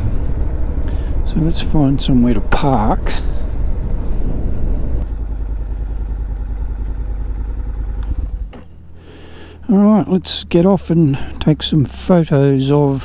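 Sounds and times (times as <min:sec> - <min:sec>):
wind rumble on microphone: 0:00.0 - 0:05.3
motorcycle engine running: 0:00.0 - 0:12.5.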